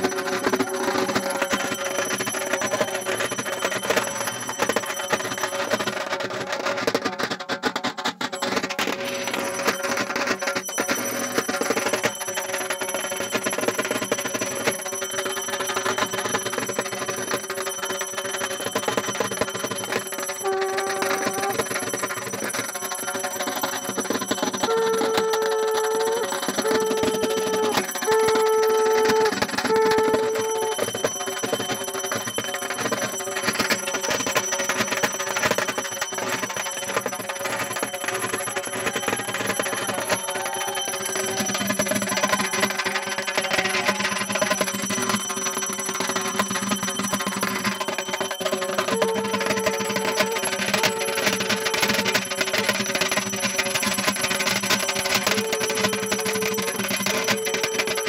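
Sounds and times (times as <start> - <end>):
high ringing: 0.0 - 6.8, 8.3 - 58.0
hand bell rung rapidly: 0.0 - 58.0
short held tones: 8.4 - 58.0.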